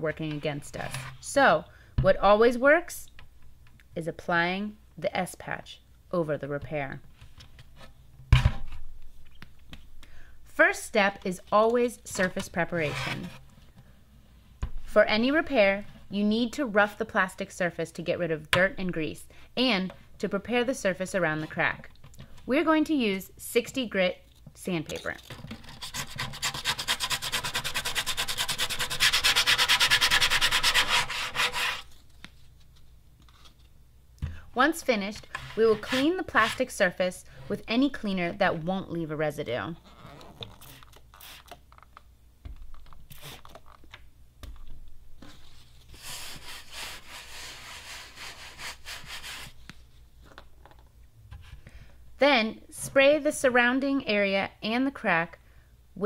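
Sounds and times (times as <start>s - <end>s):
sandpaper rubbing plastic: 25.7s - 32.0s, 45.9s - 49.6s.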